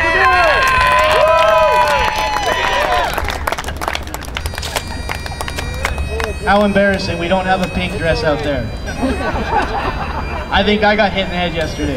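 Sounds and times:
voices shouting: 0:00.0 - 0:03.4, 0:04.9 - 0:11.9
crowd cheering and clapping: 0:00.0 - 0:07.0
bagpipe drone: 0:01.6 - 0:11.9.

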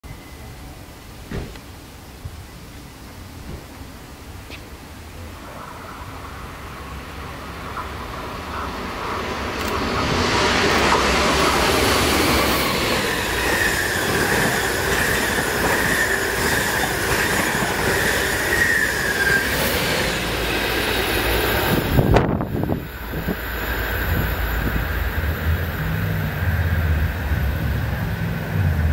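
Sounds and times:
train wheels clattering on rail: 0:01.2 - 0:01.7, 0:07.7 - 0:23.4
high-pitched whine: 0:05.4 - 0:28.9.

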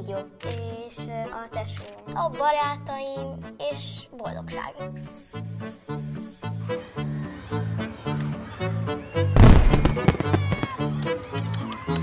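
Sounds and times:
firework-like burst with crackles: 0:09.4 - 0:10.8.

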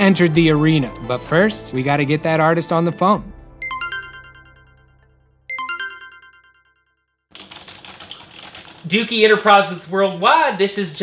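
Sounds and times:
chiming electronic call tone: 0:03.6 - 0:04.8, 0:05.5 - 0:07.0
keyboard keys clattering: 0:07.4 - 0:09.4.

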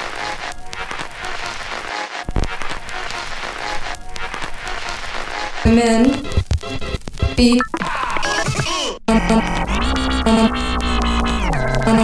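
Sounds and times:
electronic music with deep bass: 0:04.6 - 0:12.0.

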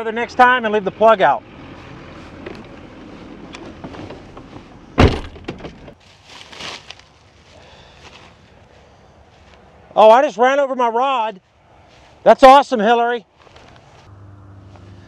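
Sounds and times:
rustling and shuffling: 0:01.7 - 0:09.8, 0:11.3 - 0:12.3, 0:13.3 - 0:14.1.

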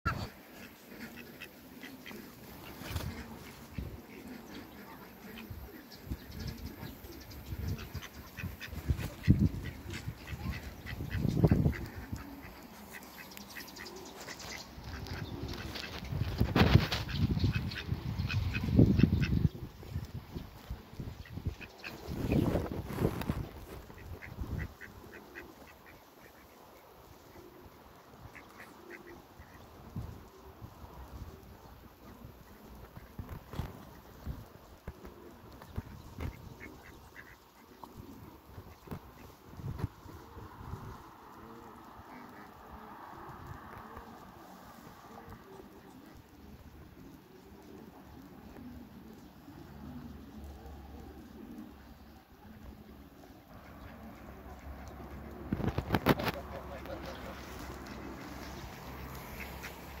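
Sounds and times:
ducks soft chirping calls: 0:00.1 - 1:00.0.

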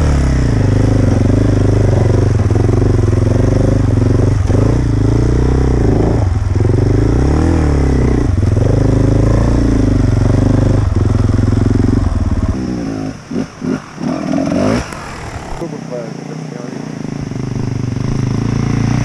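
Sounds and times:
motorcycle engine under load: 0:00.0 - 0:15.8.

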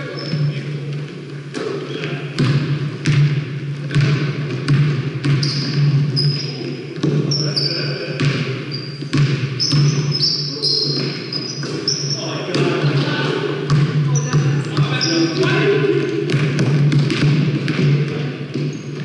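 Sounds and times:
sneakers squeaking: 0:00.0 - 0:19.0
voices echoing in a hall: 0:00.0 - 0:19.0
basketball bouncing: 0:01.5 - 0:07.6, 0:08.2 - 0:19.0.

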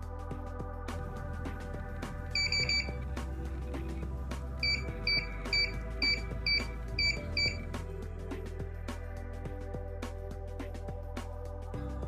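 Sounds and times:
background music: 0:00.0 - 0:12.0
keypad beeping: 0:02.4 - 0:03.0, 0:04.6 - 0:07.7.

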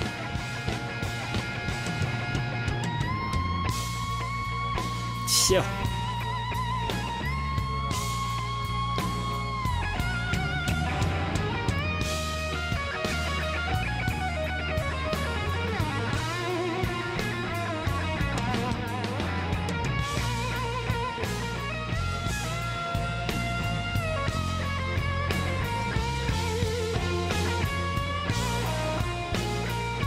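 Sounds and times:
drums and bass: 0:00.0 - 0:30.0
electric guitar solo: 0:00.0 - 0:30.0.

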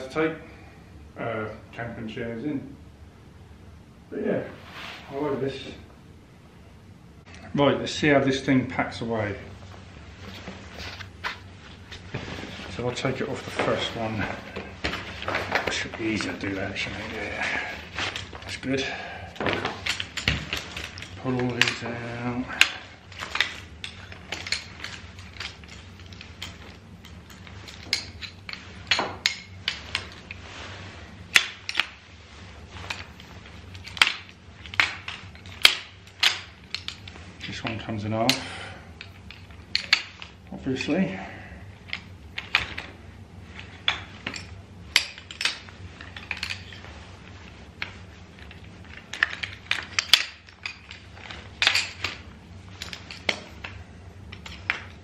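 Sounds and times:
chair frame poles clicking: 0:10.2 - 0:41.0, 0:41.7 - 0:55.0.

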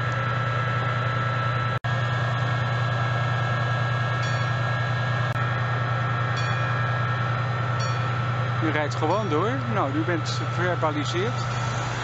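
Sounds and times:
diesel train humming: 0:00.0 - 0:12.0
faint steady whine: 0:00.0 - 0:12.0.

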